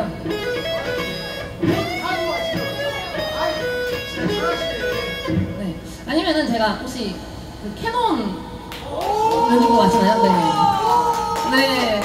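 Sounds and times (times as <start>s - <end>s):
electric guitar riff: 0.0s - 6.4s.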